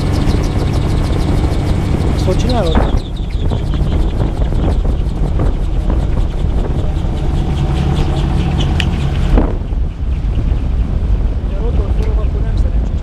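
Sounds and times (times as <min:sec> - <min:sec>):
gyroplane engine and propeller humming: 0:00.0 - 0:13.0.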